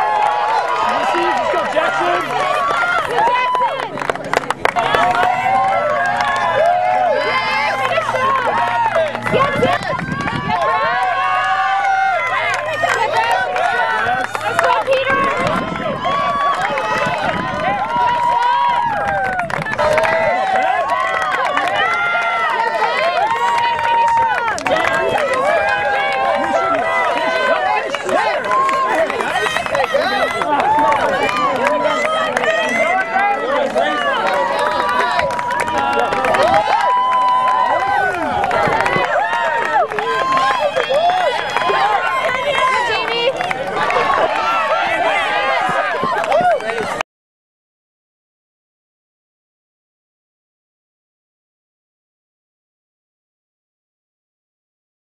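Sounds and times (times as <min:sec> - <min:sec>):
crowd shouting and cheering: 0:00.0 - 0:47.0
people clapping: 0:00.0 - 0:47.0.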